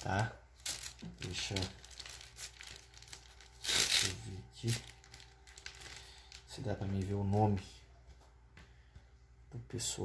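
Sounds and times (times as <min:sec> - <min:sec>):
packaging crinkling: 0:00.0 - 0:07.6.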